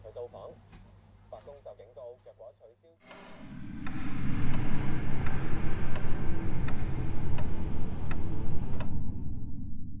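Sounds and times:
low rumbling drone: 3.0 - 10.0.

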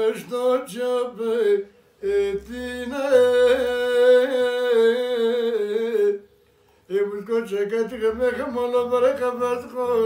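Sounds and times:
elderly man singing unaccompanied: 0.0 - 6.3, 6.9 - 10.0.

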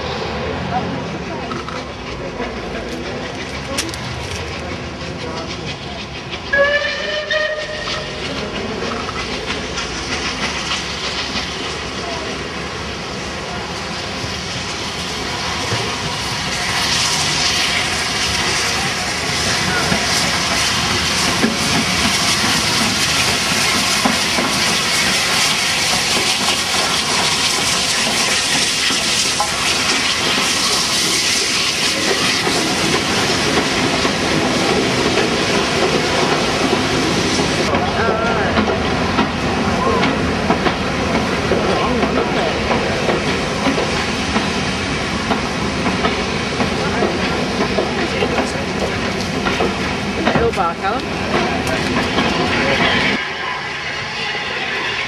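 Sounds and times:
steam locomotive hiss and rumble: 0.0 - 55.0
train coaches clattering: 0.0 - 55.0
steam locomotive whistle: 6.5 - 8.2, 53.0 - 55.0.

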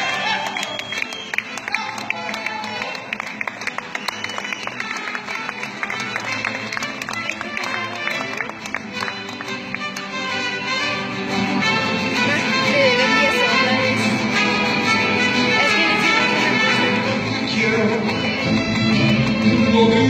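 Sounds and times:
mariachi band playing: 0.0 - 20.0.

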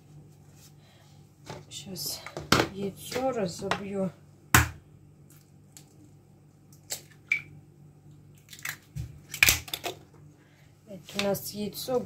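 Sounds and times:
egg cracking on bowl rim: 8.4 - 10.0.

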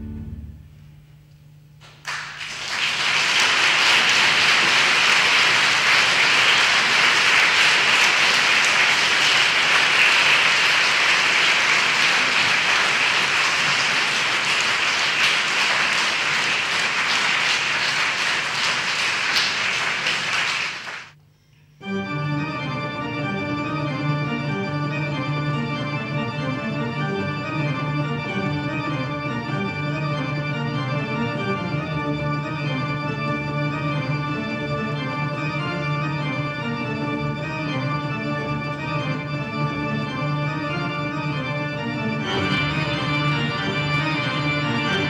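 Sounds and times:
pipe organ playing: 0.0 - 0.8, 2.7 - 21.0, 21.8 - 45.0
audience applauding: 1.8 - 21.2.

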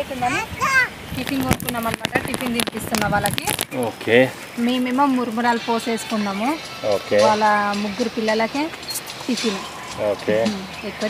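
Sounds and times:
woman talking: 0.0 - 0.5, 1.1 - 3.6, 4.6 - 9.7, 10.5 - 11.0.

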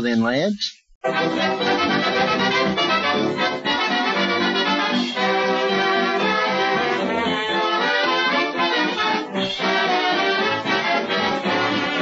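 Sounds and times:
dance band with brass: 1.0 - 12.0.

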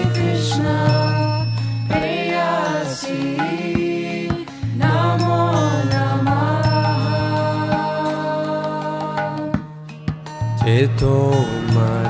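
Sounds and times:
light metallic chimes: 0.0 - 3.7, 5.1 - 8.2
person singing devotional music: 0.0 - 12.0.

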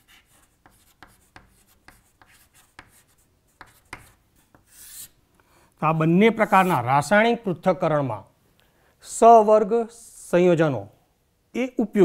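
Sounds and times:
chalk writing on chalkboard: 0.0 - 5.2, 6.4 - 6.8.

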